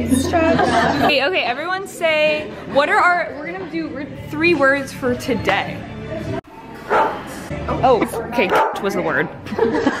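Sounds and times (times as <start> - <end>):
young women chatting: 0.0 - 5.8, 7.8 - 9.4
background music: 0.0 - 10.0.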